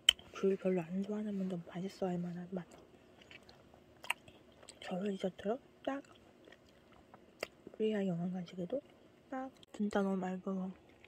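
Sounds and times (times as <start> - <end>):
soft mouth clicks: 0.0 - 0.3, 6.1 - 7.6
chewing juicy fruit: 2.6 - 5.2, 5.9 - 7.8, 10.7 - 11.0.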